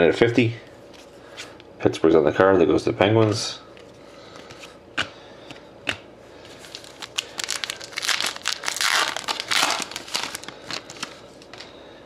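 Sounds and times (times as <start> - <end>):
foil wrapper tearing and crinkling: 6.6 - 11.6.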